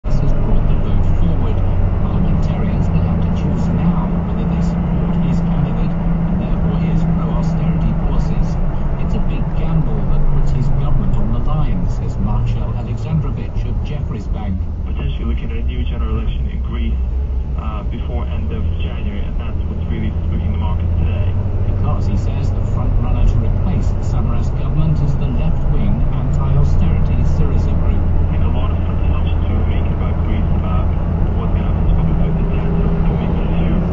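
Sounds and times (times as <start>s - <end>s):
car engine and road noise: 0.0s - 33.9s
indistinct voices: 0.0s - 33.9s.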